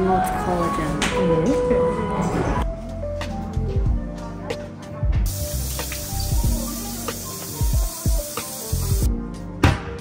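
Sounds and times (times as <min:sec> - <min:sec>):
background music with a beat: 0:02.6 - 0:10.0.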